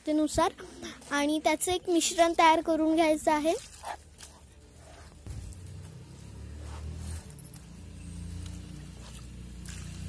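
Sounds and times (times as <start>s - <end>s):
hands mixing soil in metal pan: 0.8s - 10.0s
steady low engine hum: 4.4s - 10.0s.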